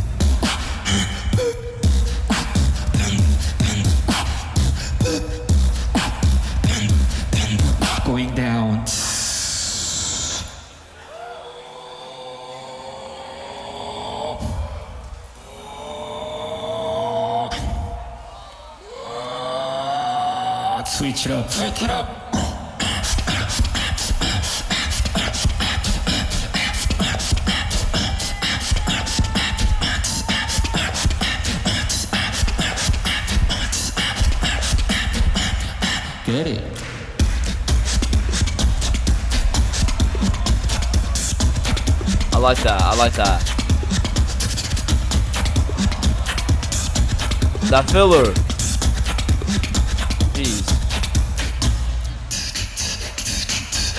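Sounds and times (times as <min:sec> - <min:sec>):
beatbox kick: 0:00.0 - 0:10.5, 0:22.3 - 0:53.9
held rising vocal tone: 0:11.4 - 0:25.9.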